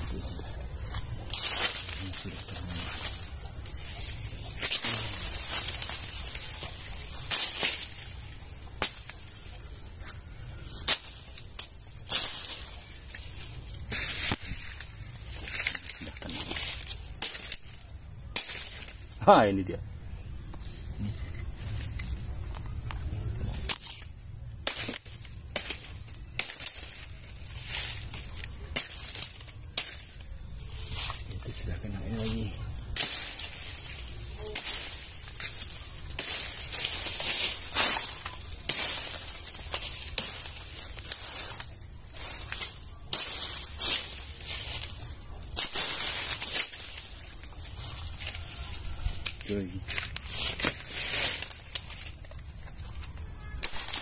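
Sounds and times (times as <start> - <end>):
sharp knocks and cracks: 4.5 - 9.4, 10.8 - 19.2, 23.6 - 30.3, 32.9 - 47.6, 49.2 - 54.0.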